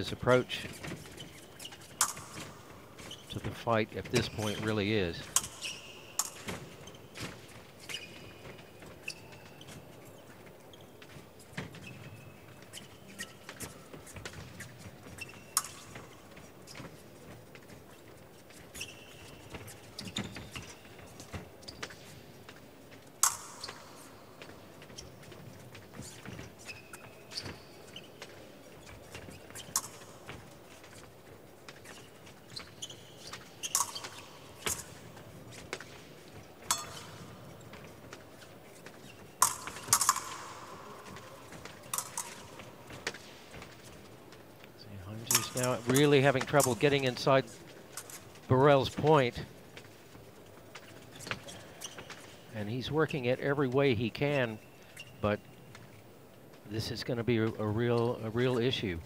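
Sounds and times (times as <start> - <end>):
shoes squeaking and stamping: 0.0 - 56.7
fencing blades clinking: 0.8 - 3.3, 4.2 - 9.8, 12.6 - 16.9, 23.2 - 28.2, 29.1 - 31.1, 31.7 - 44.2, 45.2 - 48.4.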